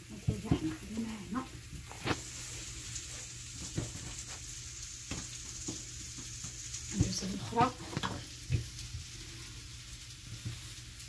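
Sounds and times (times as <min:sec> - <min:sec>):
background hiss: 0:00.0 - 0:11.0
soft knocks and rubs on countertop: 0:03.6 - 0:04.4.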